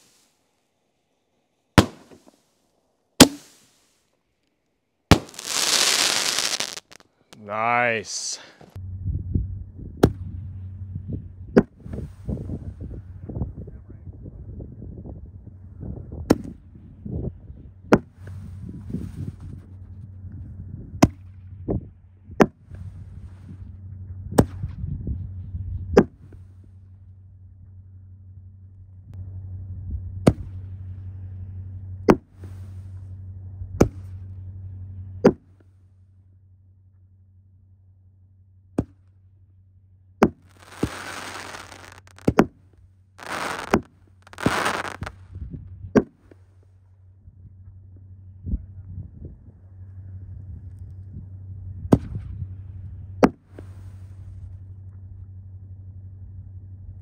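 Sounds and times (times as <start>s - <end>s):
firework crackling: 0.0s - 0.3s, 1.8s - 2.4s, 3.2s - 4.0s, 5.1s - 8.4s, 40.4s - 42.4s, 43.2s - 45.2s
firework booms: 1.8s - 2.2s, 5.1s - 7.0s, 40.3s - 42.5s, 43.2s - 45.2s.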